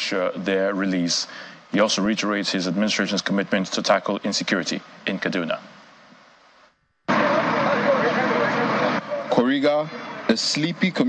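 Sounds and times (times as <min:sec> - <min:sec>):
loud vehicle noise: 0:07.1 - 0:09.3
voices in background: 0:07.1 - 0:11.0.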